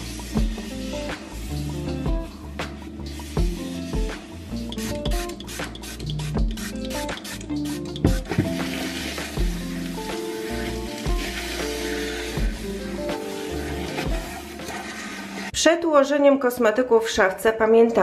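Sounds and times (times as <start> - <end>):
background music with bass line: 0.0 - 15.5
trigger spray bottle spritzing: 4.7 - 9.4
paper towel rubbing shelf: 10.4 - 15.5.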